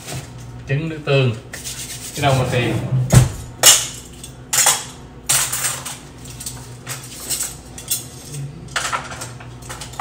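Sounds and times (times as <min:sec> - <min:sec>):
metal cutlery clinking in drawer: 0:04.0 - 0:10.0.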